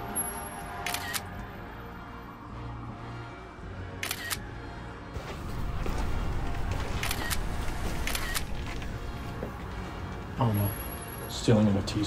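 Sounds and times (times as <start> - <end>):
background music: 0.0 - 12.0
phone camera shutter double click: 8.0 - 8.5.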